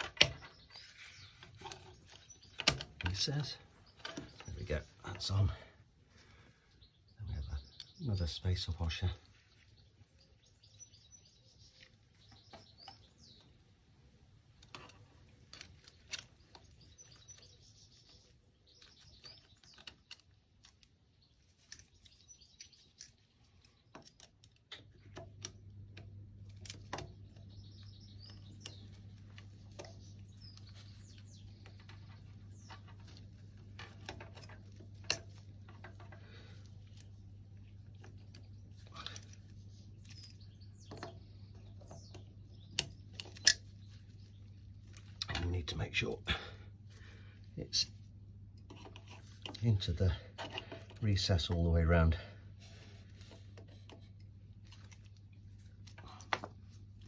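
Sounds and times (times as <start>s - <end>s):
low steady hum: 0.0s - 57.0s
small birds chirping: 0.0s - 57.0s.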